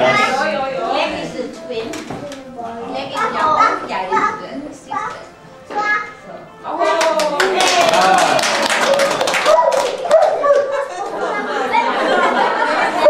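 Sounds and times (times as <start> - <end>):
small group clapping: 6.7 - 12.1.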